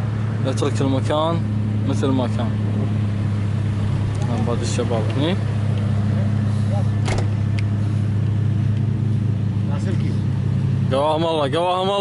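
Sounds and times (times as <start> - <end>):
low mechanical motor hum: 0.0 - 12.0.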